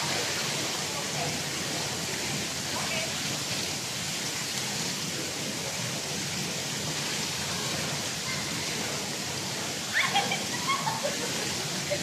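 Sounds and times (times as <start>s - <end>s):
water spilling into gutter: 0.0s - 12.0s.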